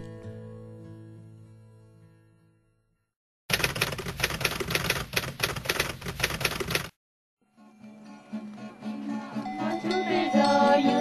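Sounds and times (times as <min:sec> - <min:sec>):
typewriter keys clattering: 0:03.5 - 0:06.9.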